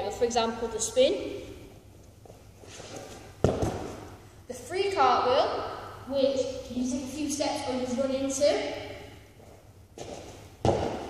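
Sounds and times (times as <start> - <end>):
landing thud on gym floor: 10.6 - 11.0.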